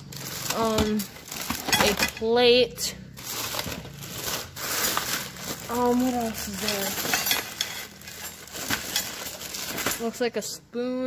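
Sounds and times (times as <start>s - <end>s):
plastic packaging rustling: 0.0s - 10.4s.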